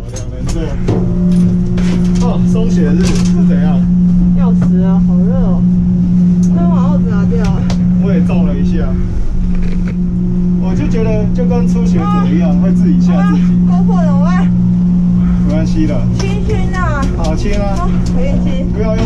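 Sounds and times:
gondola machinery humming: 0:00.0 - 0:19.0.

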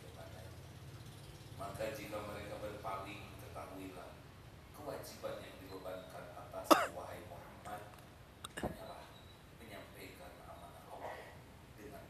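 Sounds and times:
loud cough: 0:06.7 - 0:07.0.

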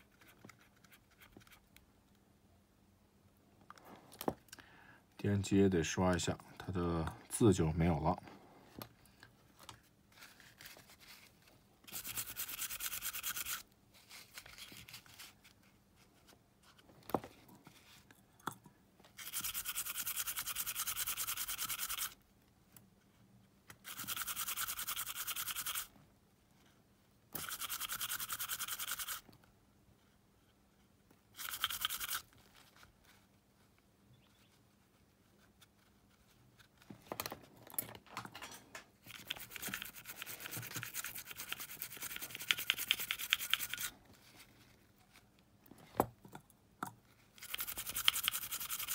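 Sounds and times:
small brush scrubbing: 0:10.1 - 0:16.8, 0:19.2 - 0:22.2, 0:23.8 - 0:25.9, 0:27.4 - 0:29.3, 0:31.4 - 0:36.8, 0:39.0 - 0:45.2, 0:47.1 - 0:48.9.

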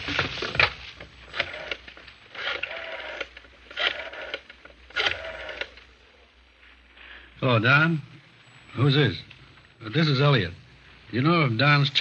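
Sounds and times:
rotary dial spinning back: 0:01.3 - 0:05.9
rotary phone dial clicking: 0:01.3 - 0:05.9.

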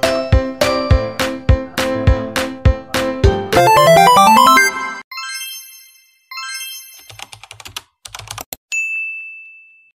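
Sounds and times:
computer keyboard typing: 0:07.0 - 0:08.6.

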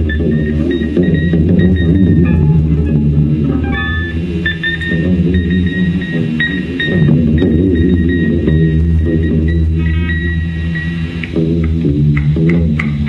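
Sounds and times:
electric guitars through amplifiers: 0:00.0 - 0:13.0.

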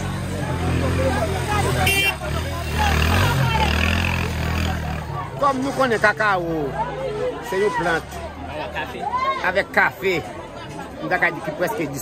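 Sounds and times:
vehicle engine humming: 0:00.0 - 0:09.2
crowd chatter: 0:00.0 - 0:12.0.

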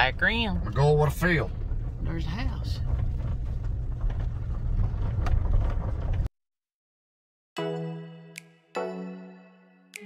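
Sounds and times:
car engine and tyres rumbling: 0:00.0 - 0:06.3.

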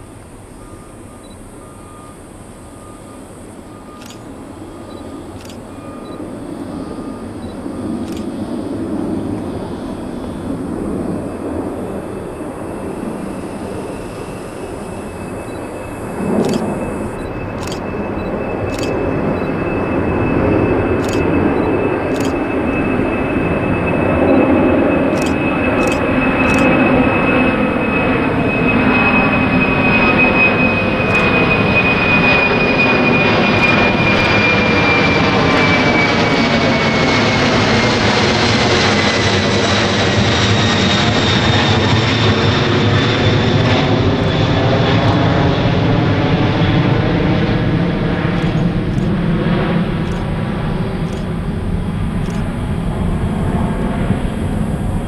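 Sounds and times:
jet engines roaring overhead: 0:00.0 - 0:55.0
camera shutter clicks: 0:16.4 - 0:16.7, 0:17.6 - 0:17.8, 0:18.7 - 0:19.0, 0:21.0 - 0:21.2, 0:22.1 - 0:22.4, 0:25.2 - 0:26.7.

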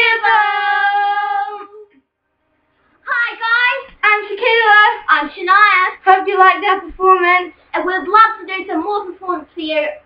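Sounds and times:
girls singing high notes: 0:00.0 - 0:01.9.

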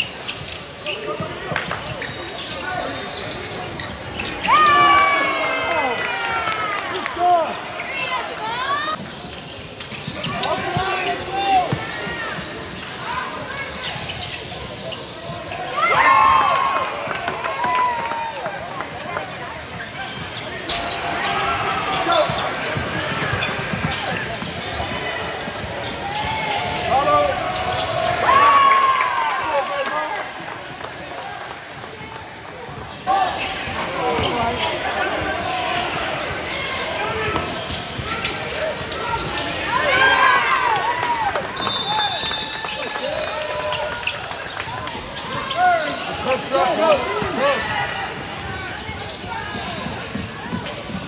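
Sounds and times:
sneakers squeaking: 0:00.0 - 0:06.0, 0:07.0 - 0:16.4, 0:17.0 - 0:28.8, 0:30.2 - 0:51.0
din of players and spectators: 0:00.0 - 0:51.0.

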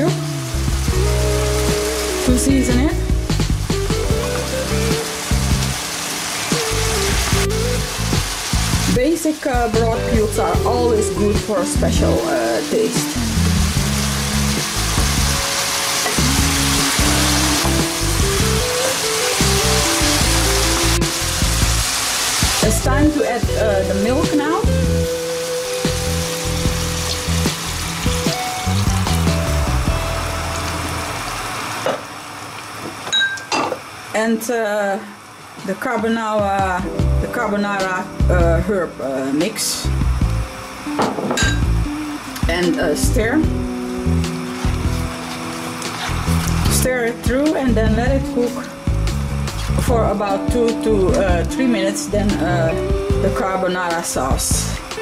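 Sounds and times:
background music: 0:00.0 - 0:32.4, 0:36.4 - 0:55.0
food sizzling in a pan: 0:00.0 - 0:34.2, 0:37.4 - 0:47.7
milk hissing in hot pan: 0:12.2 - 0:22.7.

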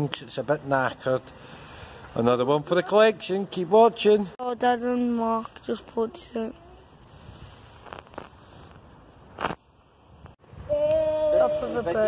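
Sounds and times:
faint outdoor hiss: 0:00.0 - 0:12.0.

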